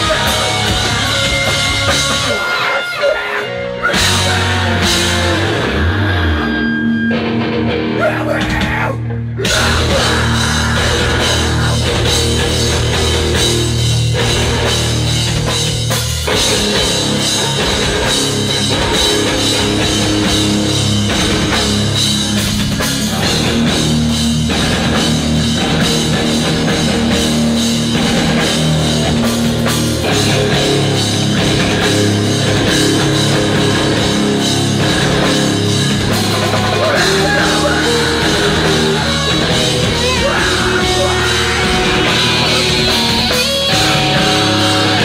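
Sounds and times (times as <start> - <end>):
bass guitar: 0.0 - 45.0
drum kit: 0.0 - 45.0
electric guitars: 0.0 - 45.0.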